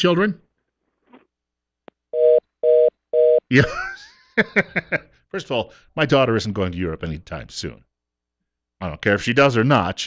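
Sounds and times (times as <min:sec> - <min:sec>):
telephone busy tone: 0:02.2 - 0:03.4.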